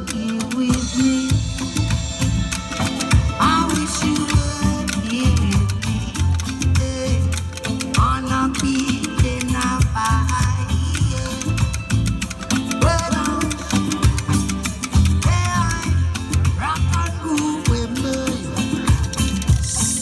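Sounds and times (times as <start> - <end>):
guitar: 0.0 - 20.0
reggae music: 0.0 - 20.0
heavy bass line: 0.7 - 20.0.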